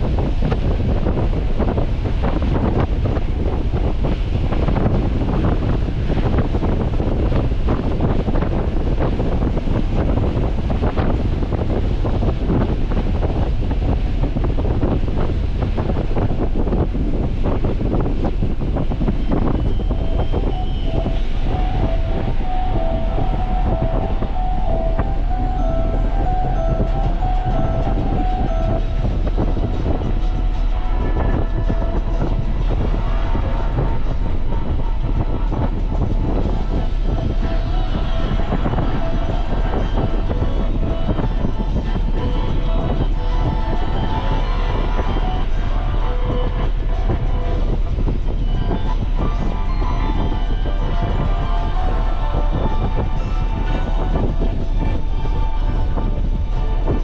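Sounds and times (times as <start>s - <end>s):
car engine rumble: 0.0s - 57.0s.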